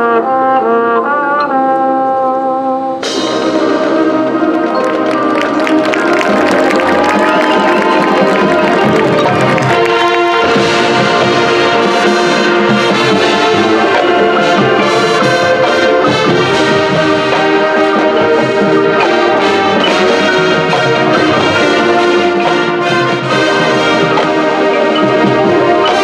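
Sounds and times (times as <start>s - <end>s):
brass sustained chords: 0.0s - 26.0s
marching band playing: 0.0s - 26.0s.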